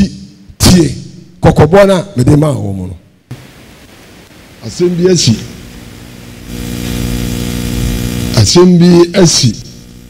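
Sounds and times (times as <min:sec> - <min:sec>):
man speaking through microphone: 0:00.0 - 0:03.0, 0:04.6 - 0:05.6, 0:08.3 - 0:09.8
background hiss and room noise: 0:00.0 - 0:10.0.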